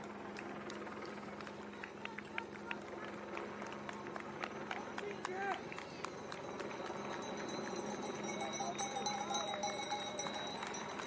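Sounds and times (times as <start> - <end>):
low engine hum: 0.0 - 11.0
runners' footfalls on asphalt: 0.0 - 11.0
spectators clapping: 0.0 - 11.0.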